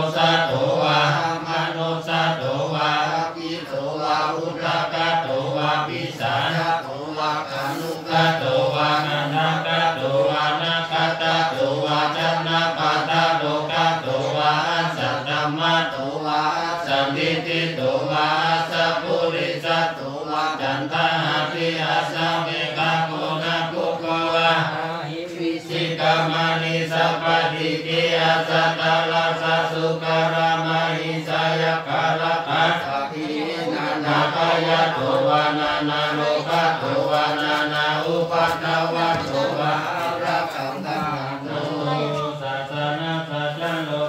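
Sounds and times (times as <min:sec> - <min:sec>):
monks chanting in monotone: 0:00.0 - 0:44.0.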